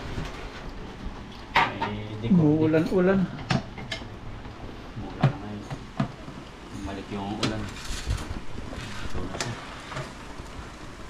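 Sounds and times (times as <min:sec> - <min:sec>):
rain hissing: 0:00.0 - 0:11.0.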